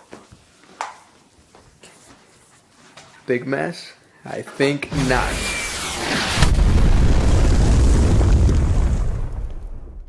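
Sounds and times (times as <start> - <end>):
deep explosion rumble: 4.9 - 10.0.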